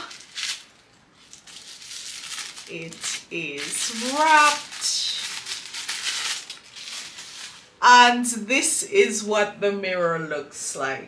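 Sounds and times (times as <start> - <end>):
paper wrapping rustling: 0.0 - 7.8.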